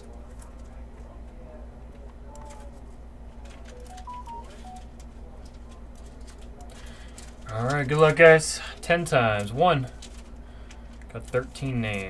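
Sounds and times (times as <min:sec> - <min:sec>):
short beeps: 0:03.8 - 0:04.8.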